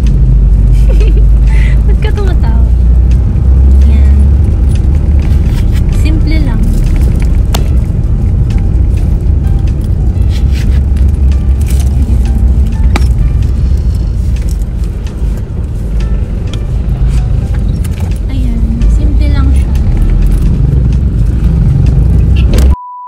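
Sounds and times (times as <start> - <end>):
low car cabin rumble: 0.0 - 22.8.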